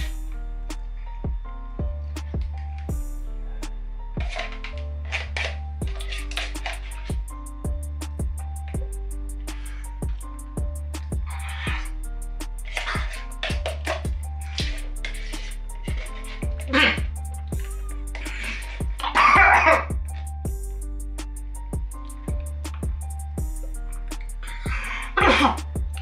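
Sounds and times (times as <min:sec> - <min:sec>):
backing music with steady beat: 0:00.0 - 0:03.9, 0:06.6 - 0:26.0
man clearing his throat: 0:25.2 - 0:25.7.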